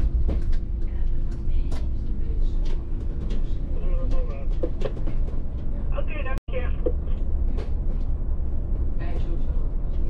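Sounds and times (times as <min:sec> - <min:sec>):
bus low rumble: 0:00.0 - 0:10.0.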